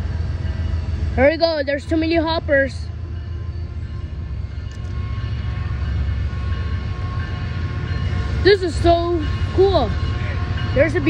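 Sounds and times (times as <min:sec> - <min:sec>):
diesel locomotive rumble: 0:00.0 - 0:11.0.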